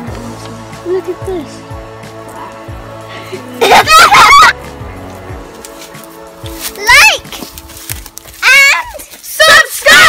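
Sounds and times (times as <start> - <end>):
background music: 0.0 - 10.0
boy laughing: 3.6 - 4.6.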